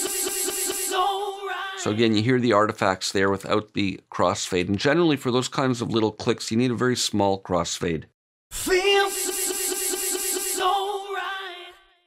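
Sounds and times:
stuttering looped sung vowel: 0.0s - 2.1s, 8.6s - 11.9s.

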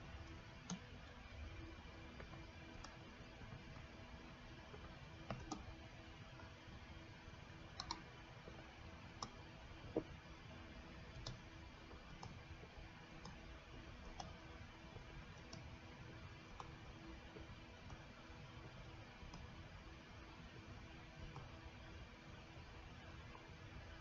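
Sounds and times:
faint steady room hum: 0.0s - 24.0s
computer mouse clicks: 0.2s - 0.9s, 1.6s - 3.8s, 4.7s - 5.8s, 7.7s - 8.2s, 9.2s - 9.4s, 11.1s - 12.5s, 13.2s - 19.6s, 21.2s - 21.6s.

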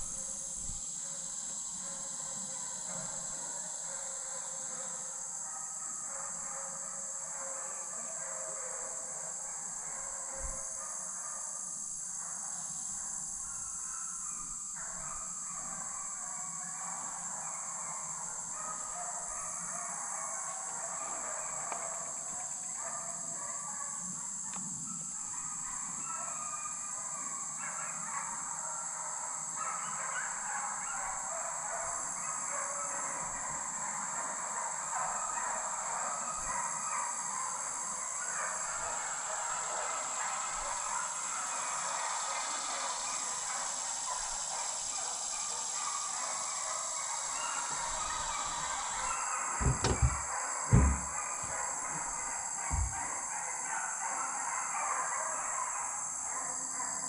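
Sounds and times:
insects droning: 0.0s - 57.0s
hounds baying: 12.3s - 57.0s.

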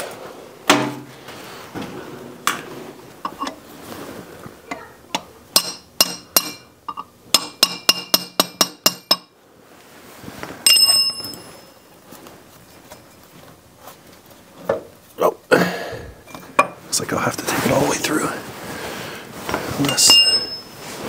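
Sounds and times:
hammer striking steel punch: 5.6s - 6.6s
ringing metallic clank: 10.6s - 11.8s, 19.9s - 20.8s.

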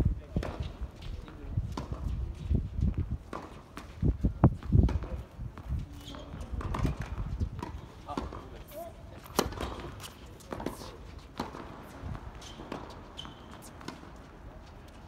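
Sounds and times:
footsteps on court: 0.2s - 15.0s
tennis ball bouncing on hard court: 4.6s - 14.3s
rackets striking tennis ball: 6.1s - 14.4s.

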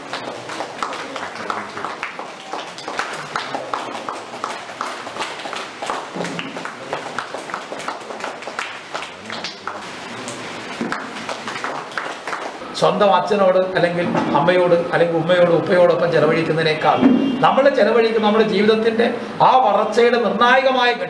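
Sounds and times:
small group clapping: 0.0s - 13.0s.

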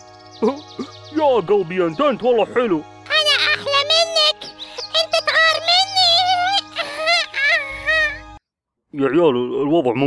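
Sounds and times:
high-pitched cartoon voice singing: 3.1s - 8.3s.

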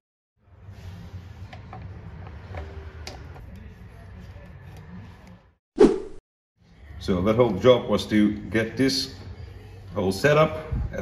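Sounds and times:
low workshop hum: 0.4s - 5.6s, 6.6s - 11.0s.

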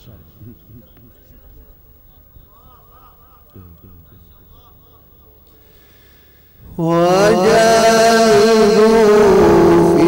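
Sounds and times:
man reciting melodically: 0.0s - 5.7s, 6.6s - 10.0s.

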